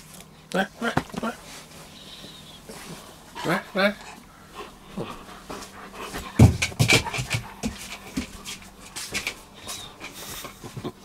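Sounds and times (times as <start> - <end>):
dog panting: 2.7 - 11.0
dog landing with heavy thump: 6.2 - 8.3
quick bumps on floor: 6.3 - 8.3.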